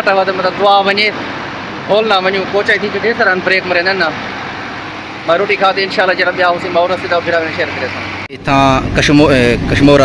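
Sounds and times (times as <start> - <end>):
man talking: 0.0 - 1.2, 1.9 - 4.2, 5.2 - 10.0
bus engine humming: 0.0 - 10.0.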